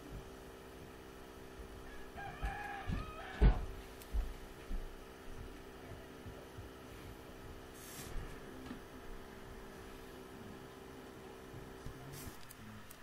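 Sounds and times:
steady hum: 0:00.0 - 0:13.0
soft low thumps: 0:02.4 - 0:09.7.

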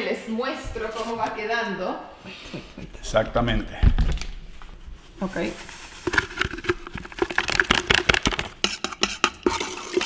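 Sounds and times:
plastic packet crinkling: 0:05.3 - 0:08.6
spoon scraping steel pot: 0:05.3 - 0:10.0.

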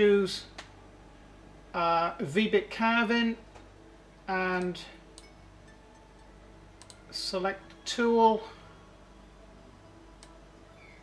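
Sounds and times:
low steady hum: 0:00.0 - 0:11.0
computer mouse clicks: 0:06.8 - 0:07.0.

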